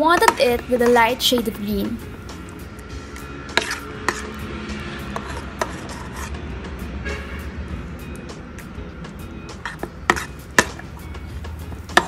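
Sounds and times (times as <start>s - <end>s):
background music: 0.0s - 12.0s
metal spoon scraping steel bowl: 3.5s - 6.4s, 9.5s - 10.8s.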